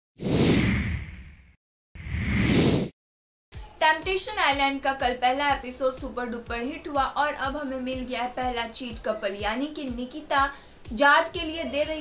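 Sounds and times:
whoosh with low rumble: 0:00.2 - 0:02.9.

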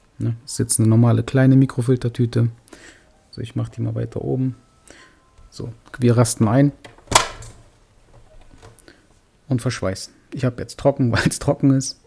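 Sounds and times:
plastic lid snapping shut: 0:06.9 - 0:07.6.

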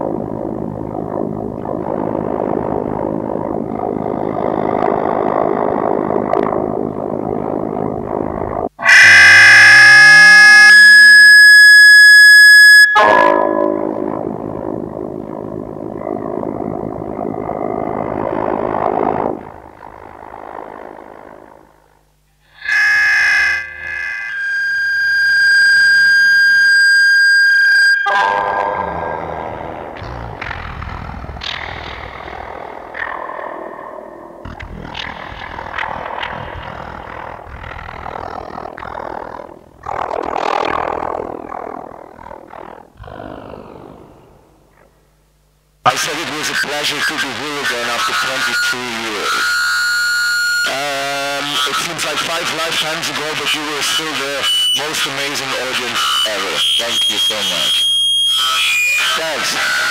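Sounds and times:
harsh industrial electronic music: 0:00.0 - 0:08.9, 0:13.0 - 0:21.4, 0:28.0 - 0:43.0
loud blasts of distorted tones: 0:00.0 - 0:45.0, 0:45.8 - 0:59.9.

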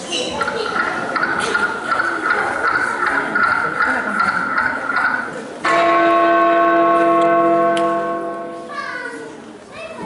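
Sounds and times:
church bell ringing: 0:05.6 - 0:09.1.

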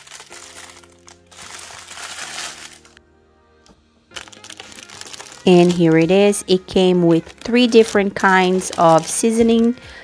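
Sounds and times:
plastic packaging crinkling: 0:00.0 - 0:03.0, 0:04.2 - 0:10.0
soft background music: 0:00.0 - 0:10.0.

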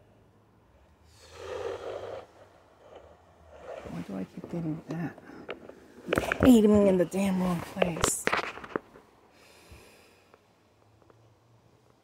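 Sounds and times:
person exhaling heavily: 0:01.0 - 0:03.9.

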